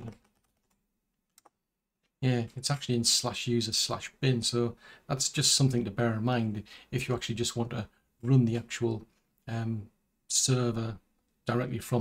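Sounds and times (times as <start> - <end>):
computer keyboard keystrokes: 0.0 - 1.6.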